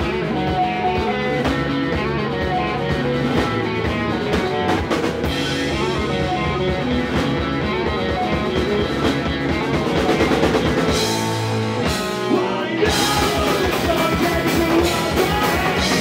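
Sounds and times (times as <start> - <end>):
punk rock band playing: 0.0 - 16.0.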